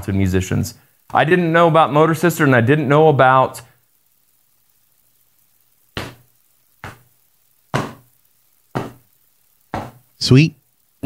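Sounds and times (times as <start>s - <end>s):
short knocks: 6.0s - 7.1s, 7.7s - 8.1s, 8.8s - 9.0s, 9.7s - 10.0s.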